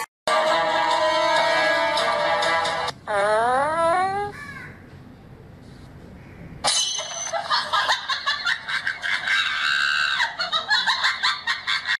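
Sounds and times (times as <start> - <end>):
shrill cackling laughter: 7.3 - 12.0.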